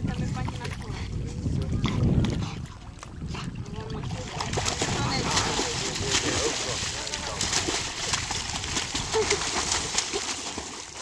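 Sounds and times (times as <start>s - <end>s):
wind buffeting microphone: 0.0s - 10.2s
dog splashing into water: 3.8s - 11.0s.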